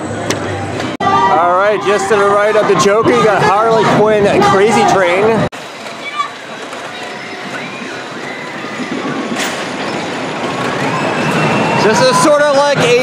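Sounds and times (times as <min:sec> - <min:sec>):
distant voices: 0:00.0 - 0:13.0
roller coaster train rumbling: 0:00.0 - 0:13.0.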